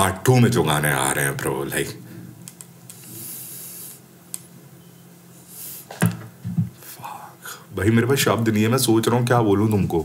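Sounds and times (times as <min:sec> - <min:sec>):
breath hissing through teeth: 0:03.0 - 0:04.0.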